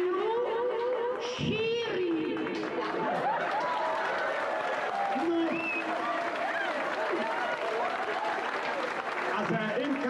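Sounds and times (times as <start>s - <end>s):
audience applauding: 2.0s - 10.0s.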